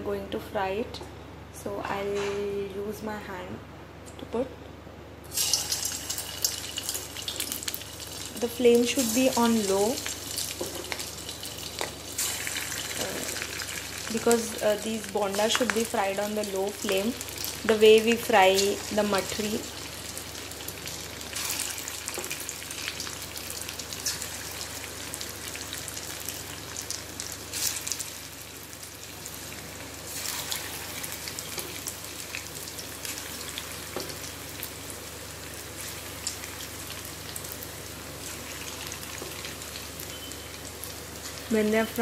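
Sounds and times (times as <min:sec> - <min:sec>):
deep-frying crackling sizzle: 0:05.2 - 0:42.0.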